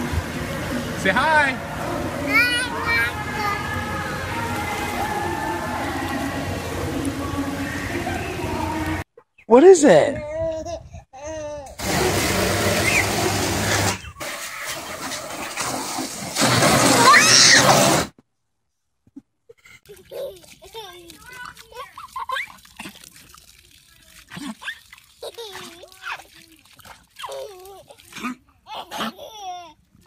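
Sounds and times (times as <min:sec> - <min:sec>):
water splashing: 0:00.0 - 0:09.0, 0:11.8 - 0:18.1, 0:19.8 - 0:30.0.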